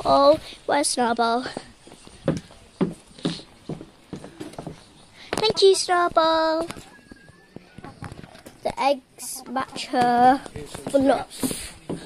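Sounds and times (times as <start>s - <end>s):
hens clucking: 4.3s - 6.0s, 6.6s - 11.6s.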